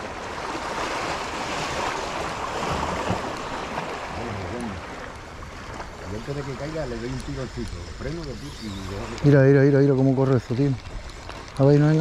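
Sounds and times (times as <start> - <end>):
sea water rushing: 0.0 - 12.0.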